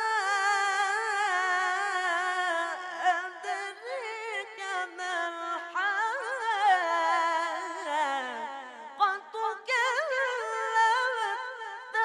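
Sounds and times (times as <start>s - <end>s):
boy reciting in melodic chant: 0.0s - 12.0s.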